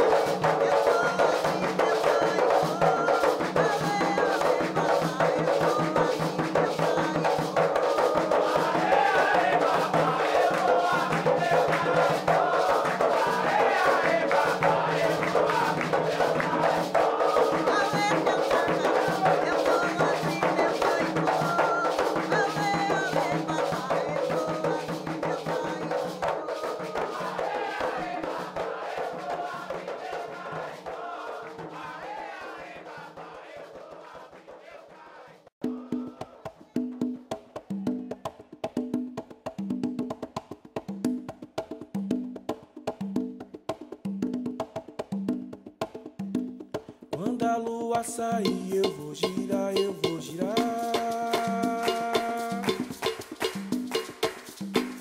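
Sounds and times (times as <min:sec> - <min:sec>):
many voices singing a chant: 0:00.0 - 0:36.4
dense percussion: 0:44.1 - 0:55.0.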